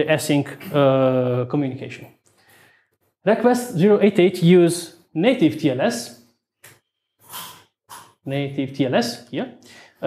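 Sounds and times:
man speaking: 0.0s - 2.2s, 3.2s - 6.2s, 8.3s - 9.6s
man breathing in: 2.4s - 3.0s, 9.6s - 10.0s.

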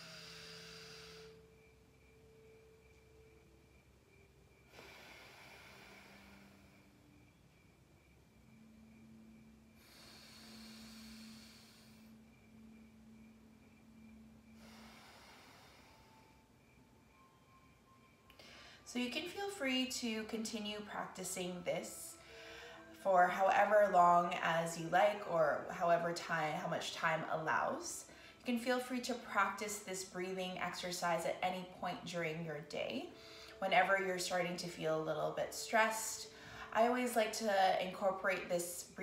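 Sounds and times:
slow nostril breaths: 9.8s - 12.2s, 14.5s - 16.4s.

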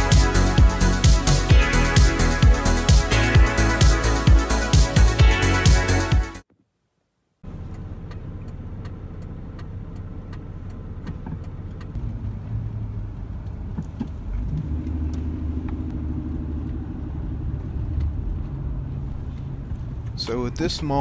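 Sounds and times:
car engine and tyre rumble: 7.4s - 21.0s.

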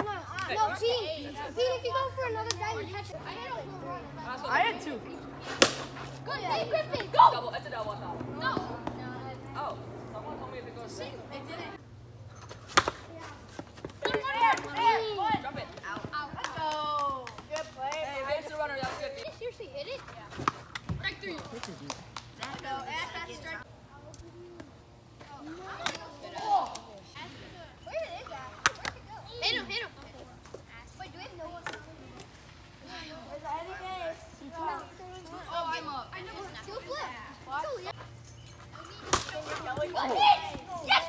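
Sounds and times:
children talking and calling out: 0.0s - 11.8s, 13.0s - 20.4s, 22.4s - 41.0s
plastic bat hitting ball: 5.5s - 6.0s.

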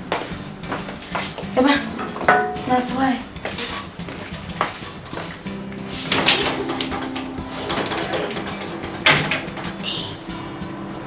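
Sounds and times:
woman speaking: 1.6s - 2.0s, 2.6s - 3.7s
metal chair: 5.8s - 11.0s.

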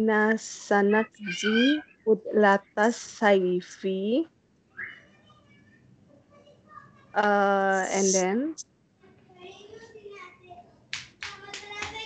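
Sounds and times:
faint voices: 0.0s - 4.2s, 4.8s - 8.6s
sharp claps: 10.9s - 12.0s.

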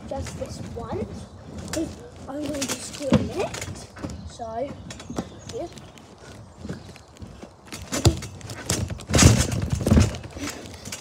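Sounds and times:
trampoline mat thumping: 0.0s - 5.3s, 7.6s - 11.0s.

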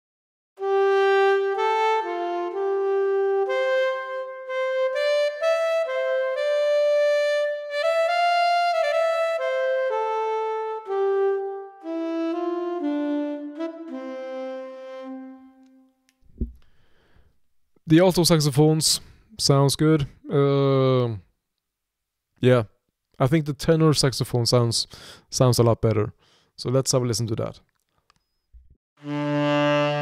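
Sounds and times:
alto saxophone solo melody: 0.6s - 16.1s, 29.0s - 30.0s.

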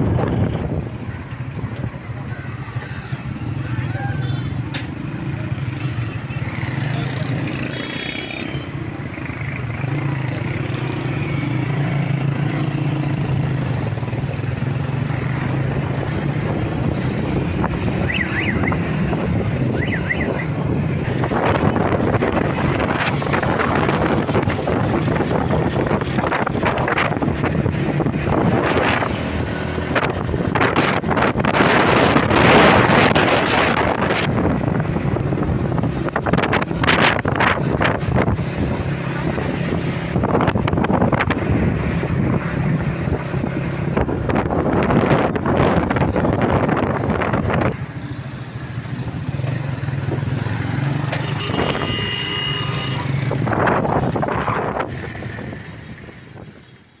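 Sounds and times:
road noise: 0.0s - 57.0s
wind buffeting microphone: 13.1s - 50.8s, 53.0s - 56.8s.

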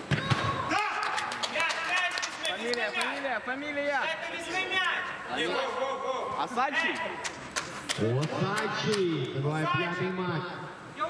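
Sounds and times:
men calling and talking: 0.4s - 11.0s.

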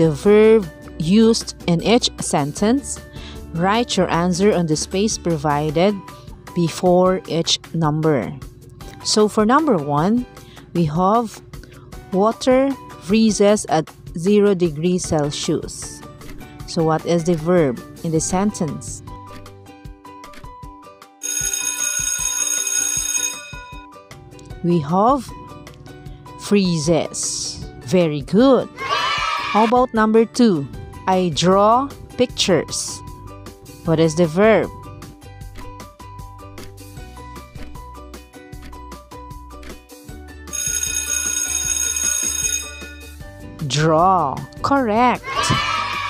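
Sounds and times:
light plucked background music: 0.0s - 46.0s
alarm clock bell ringing: 21.2s - 23.9s, 40.5s - 43.2s.

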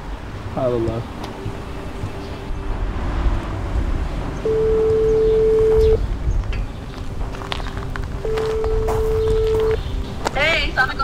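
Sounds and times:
low rumble of outdoor noise: 0.0s - 11.0s
phone ringback tone: 4.5s - 6.0s, 8.2s - 9.8s.

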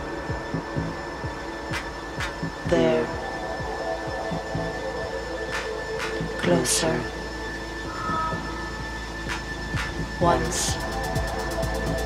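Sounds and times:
techno kick-drum beat: 0.0s - 12.0s.

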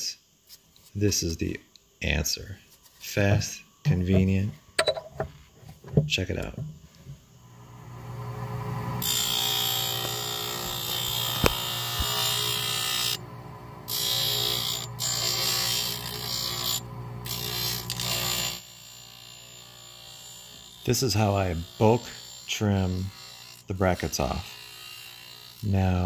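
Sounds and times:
motor hum: 3.4s - 18.5s
grinding wheel hissing grind: 6.4s - 18.7s.

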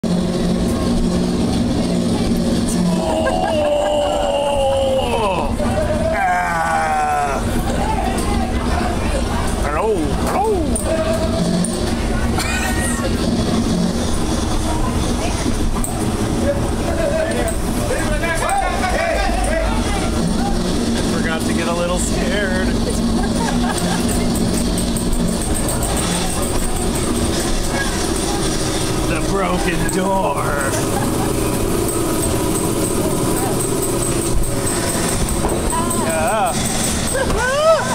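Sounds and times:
ride car rumbling on track: 0.0s - 37.9s
indistinct voices: 0.9s - 37.9s.

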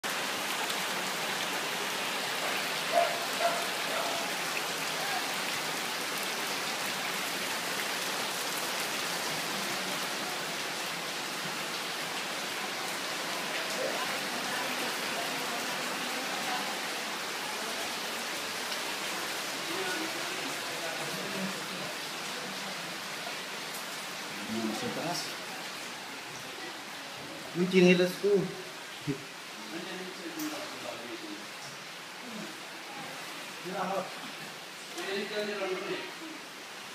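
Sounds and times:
heavy rain hissing: 0.0s - 36.9s.

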